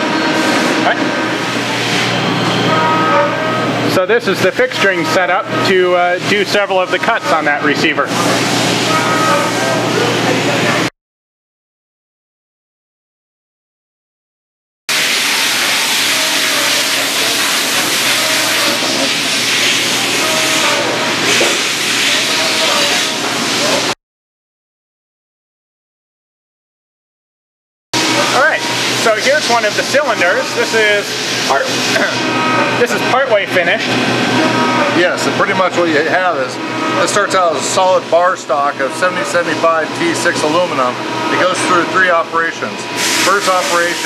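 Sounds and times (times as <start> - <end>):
machine whining tones: 0.0 - 10.9, 14.9 - 24.0, 28.0 - 44.0
machinery hiss: 14.9 - 23.9, 42.8 - 44.0.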